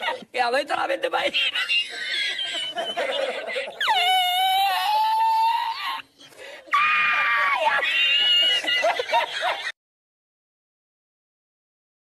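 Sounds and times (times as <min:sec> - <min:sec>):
man's high-pitched laughter: 0:01.2 - 0:06.0, 0:06.7 - 0:09.7.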